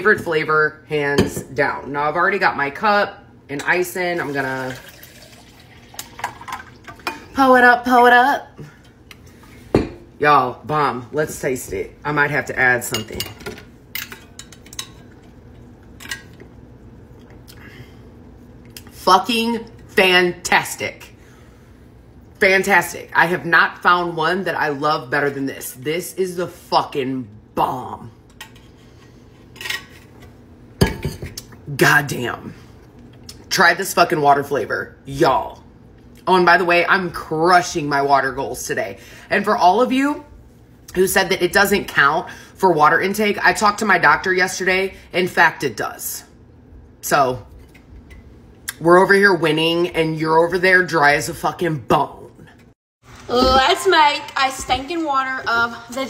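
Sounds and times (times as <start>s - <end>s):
liquid pouring over ice: 4.2s - 7.0s.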